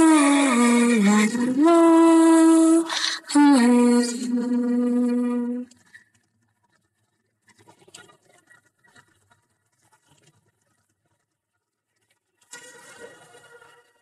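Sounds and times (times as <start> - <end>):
sound with faint steady tones: 0.0 - 14.0.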